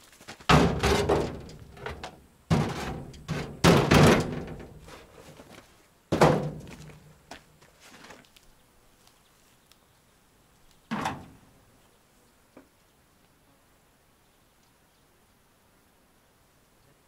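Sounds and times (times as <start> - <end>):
heavy objects thudding on sheet metal: 0.5 - 4.9, 6.1 - 6.8.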